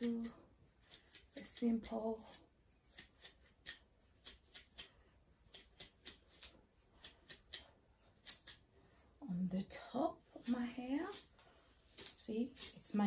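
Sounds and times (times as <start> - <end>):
comb rasping through hair: 0.0 - 13.0.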